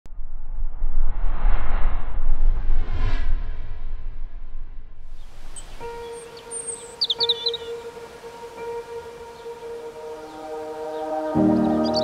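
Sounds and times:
short bird chirps: 5.6s - 7.8s
soft ambient music held note: 5.6s - 12.0s.

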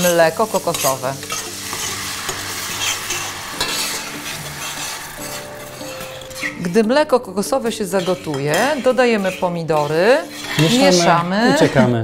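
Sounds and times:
oil sizzling in a pan: 0.0s - 11.8s.

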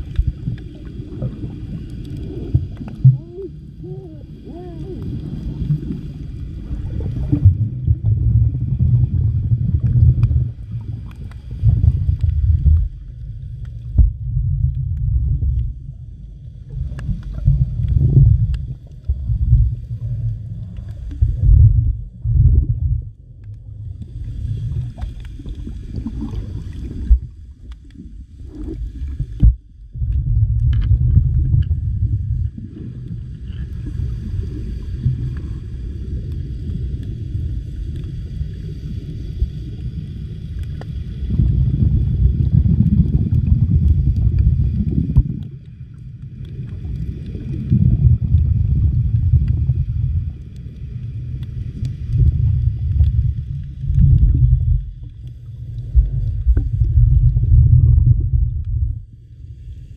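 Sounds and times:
underwater rumbling wash: 0.0s - 59.9s.

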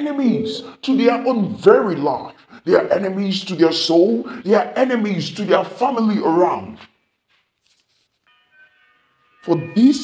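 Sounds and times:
faint background music: 0.0s - 6.9s, 7.6s - 10.0s.

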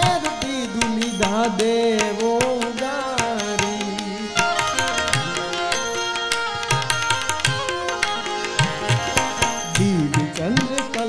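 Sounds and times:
held melodic accompaniment: 0.0s - 11.0s
tablas playing: 0.0s - 11.0s.

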